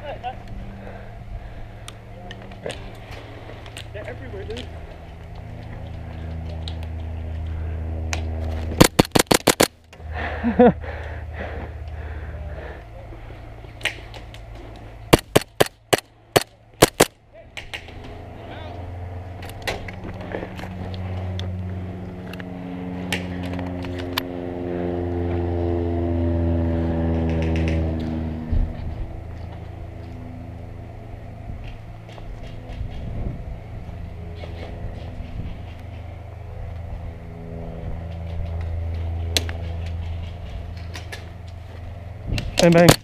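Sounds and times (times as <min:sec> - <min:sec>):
engine humming: 0:00.0 - 0:43.0
sharp clicks: 0:08.8 - 0:10.0, 0:15.2 - 0:17.9.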